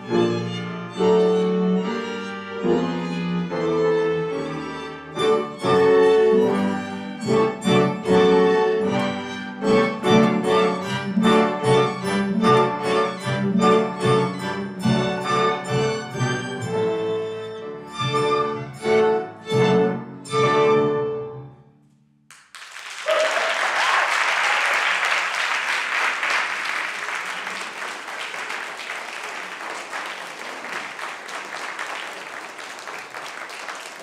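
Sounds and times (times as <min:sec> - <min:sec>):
string orchestra playing chords: 0:00.0 - 0:21.7.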